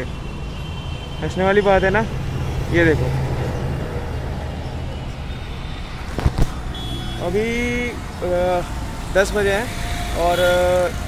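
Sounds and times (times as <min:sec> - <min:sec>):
road traffic rumble: 0:00.0 - 0:11.0
man speaking: 0:07.2 - 0:11.0.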